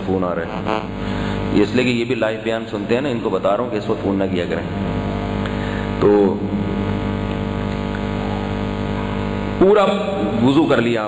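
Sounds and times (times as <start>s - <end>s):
electrical hum and buzz: 0.0s - 11.0s
man speaking: 1.5s - 5.2s, 6.0s - 6.8s, 9.6s - 11.0s.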